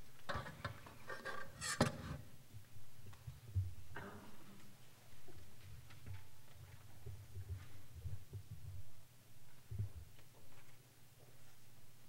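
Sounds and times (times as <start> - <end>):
small knocks and rustling: 3.0 - 11.6.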